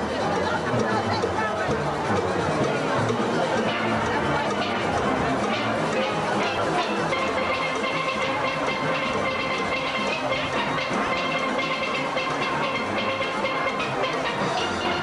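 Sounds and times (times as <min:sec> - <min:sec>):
percussion rhythm: 0:00.0 - 0:15.0
steelpans playing tune: 0:00.0 - 0:15.0.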